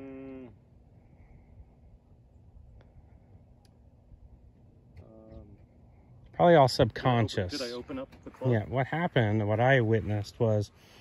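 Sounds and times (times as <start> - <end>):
man humming: 0.0 - 0.6.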